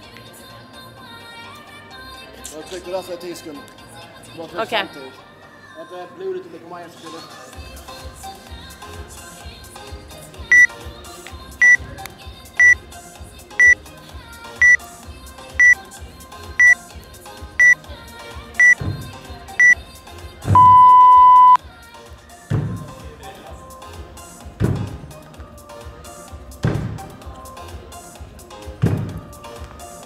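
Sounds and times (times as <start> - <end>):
background music: 0.0 - 30.0
long lower beep: 20.6 - 21.6
short high beeps: 20.6 - 21.6.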